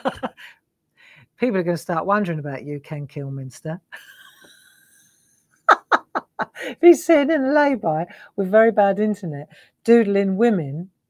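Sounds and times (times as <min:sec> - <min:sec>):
woman laughing: 0:00.0 - 0:00.5, 0:03.9 - 0:06.8.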